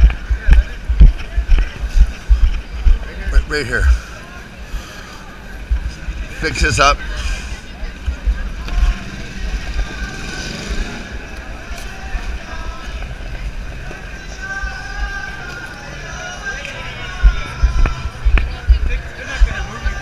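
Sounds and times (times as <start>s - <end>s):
crowd chatter: 0.0s - 20.0s
passing traffic: 0.0s - 20.0s.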